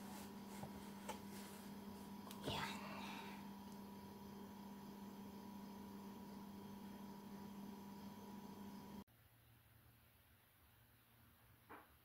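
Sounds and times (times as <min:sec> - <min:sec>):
faint electrical hum: 0:00.0 - 0:12.0
low room hiss: 0:00.0 - 0:12.0.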